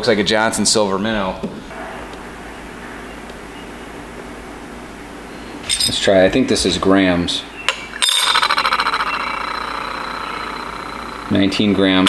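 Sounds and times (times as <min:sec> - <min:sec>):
metal lure rattling on glass: 0:08.0 - 0:11.9.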